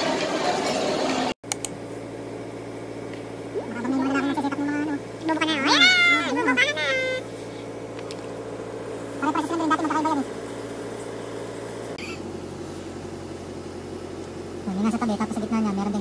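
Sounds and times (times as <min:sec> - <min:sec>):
steady low hum: 0:01.5 - 0:16.0
person making drawn-out calls: 0:03.6 - 0:07.3.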